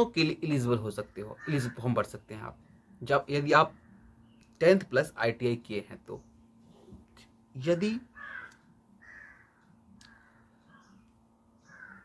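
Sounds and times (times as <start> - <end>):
crow cawing: 1.3 - 2.0, 8.1 - 11.0, 11.6 - 12.0.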